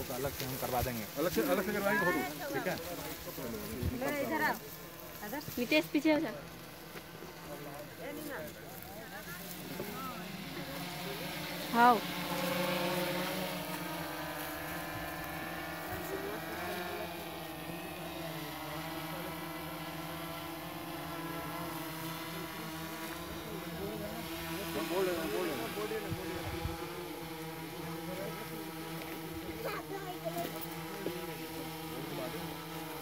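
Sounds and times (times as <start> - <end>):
drone rotors buzzing: 0.0 - 33.0.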